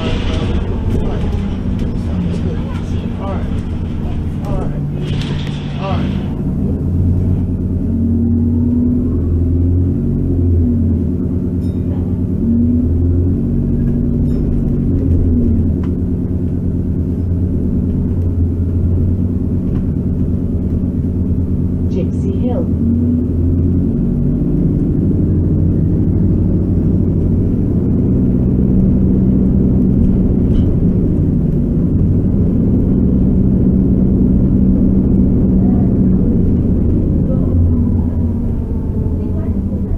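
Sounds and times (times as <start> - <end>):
bus engine from inside: 0.0 - 39.9.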